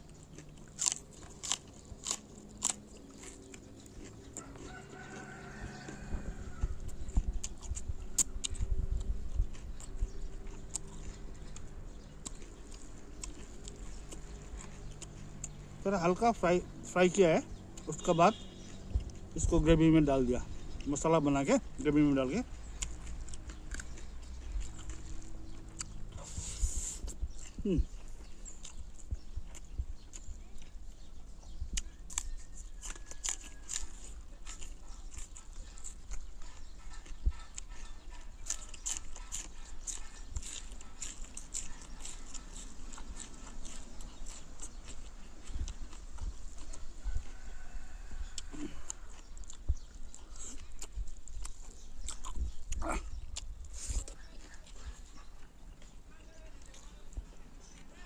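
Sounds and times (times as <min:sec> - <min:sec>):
chewing and lip-smacking: 0:00.0 - 0:58.0.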